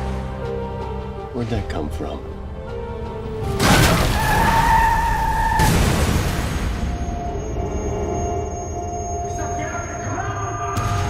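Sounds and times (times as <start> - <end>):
car tyres skidding: 3.6 - 5.8.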